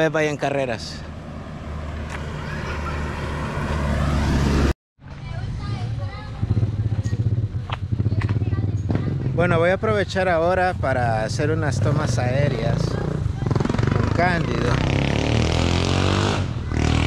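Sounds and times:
vehicle engine approaching: 0.6 - 17.0.

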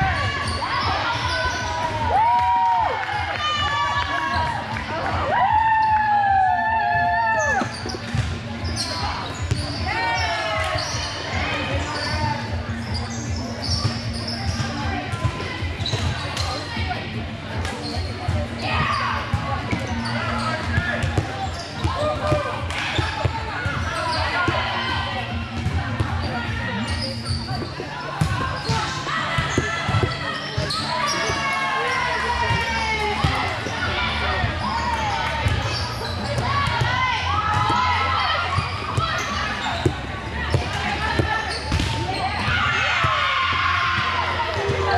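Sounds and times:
loud shout: 5.2 - 7.7
voices calling out: 6.6 - 44.9
volleyballs bouncing and hit: 13.8 - 16.7, 17.5 - 31.4, 34.4 - 43.3, 43.9 - 44.9.

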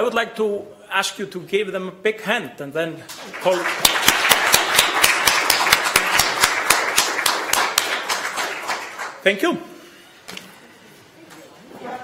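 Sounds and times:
audience applauding: 3.1 - 9.2.

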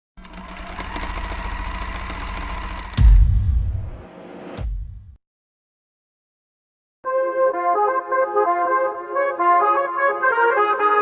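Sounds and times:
mechanical clatter with whine: 0.2 - 4.0
deep boom: 3.0 - 5.2.

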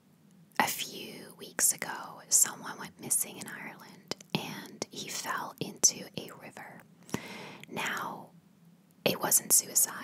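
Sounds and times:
woman whispering: 0.6 - 6.8, 7.6 - 8.3, 9.1 - 10.0.

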